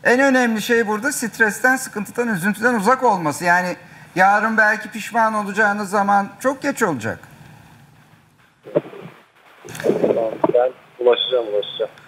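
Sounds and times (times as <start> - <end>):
person talking: 8.7 - 12.0.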